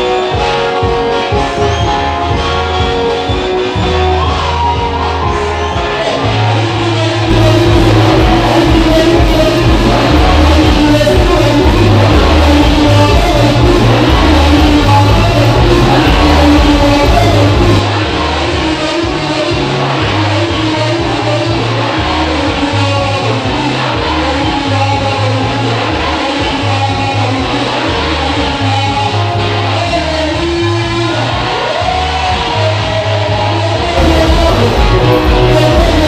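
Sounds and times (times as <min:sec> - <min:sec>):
church praise music: 0:00.0 - 0:36.0
person singing: 0:00.0 - 0:36.0
walking bass line: 0:00.0 - 0:36.0.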